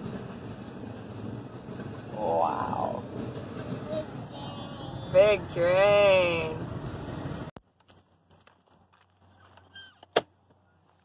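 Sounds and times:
freight train passing: 0.0s - 7.5s.

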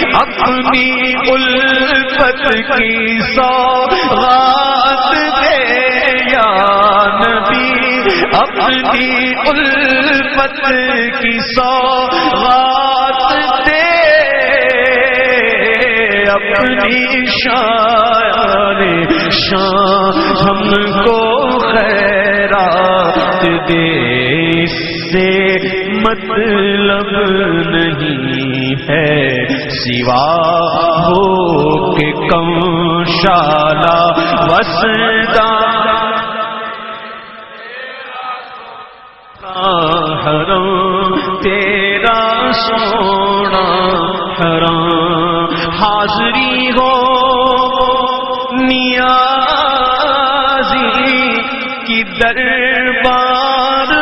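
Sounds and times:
man singing: 0.0s - 54.0s
men chanting devotional poem: 0.0s - 54.0s.

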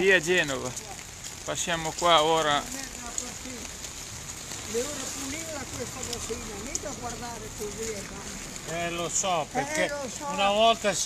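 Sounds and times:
rain on wet street: 0.0s - 11.0s.

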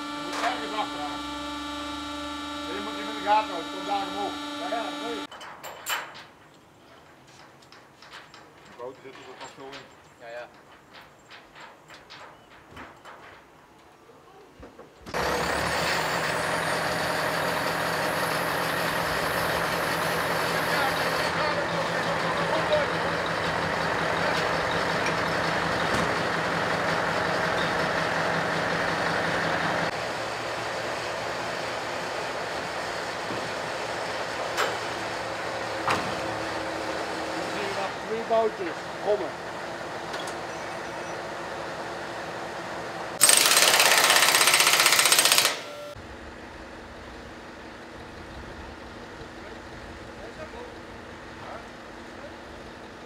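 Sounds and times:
truck engine running: 0.0s - 5.3s, 15.1s - 53.0s.

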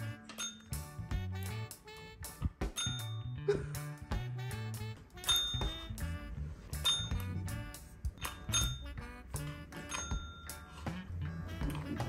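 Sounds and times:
background music: 0.0s - 12.0s
bell dinging: 0.3s - 0.8s, 2.8s - 3.3s, 5.2s - 5.7s, 6.8s - 7.3s, 8.2s - 8.9s, 9.9s - 10.6s.

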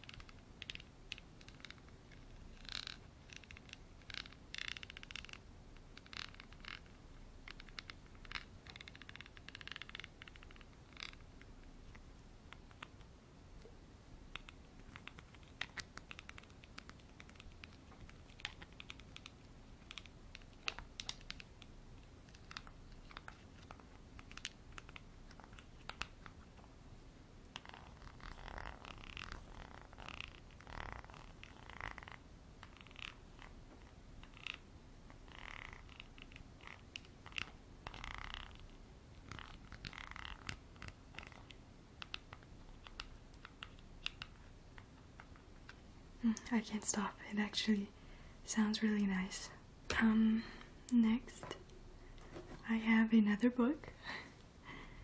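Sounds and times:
scratchy rasping on glass: 27.6s - 33.5s.

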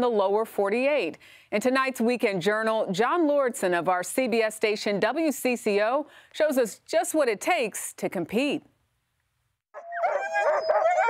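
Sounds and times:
huskies howling and yelping: 9.8s - 11.0s.

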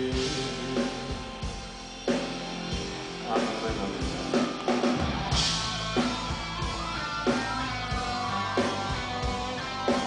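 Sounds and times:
drums keeping a steady beat: 0.0s - 10.0s
electric guitar: 0.0s - 10.0s.

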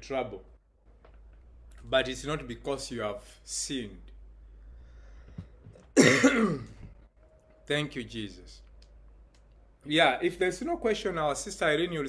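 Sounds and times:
man coughing: 6.0s - 6.9s.

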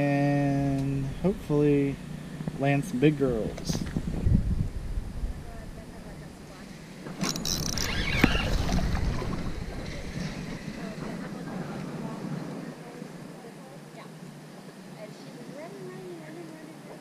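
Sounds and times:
wind buffeting microphone: 0.9s - 13.4s.

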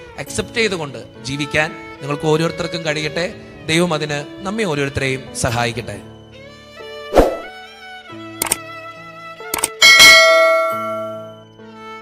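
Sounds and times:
soft background music: 0.0s - 12.0s
bright bell ding: 9.8s - 11.4s.

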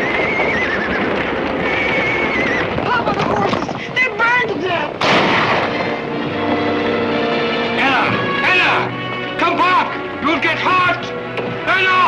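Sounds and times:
horses whinnying: 0.0s - 4.1s
clatter of hooves: 0.0s - 7.0s.

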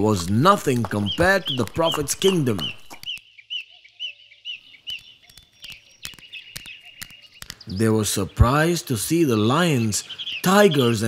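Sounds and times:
small birds chirping: 0.0s - 11.0s
faint clicks: 4.9s - 7.7s.

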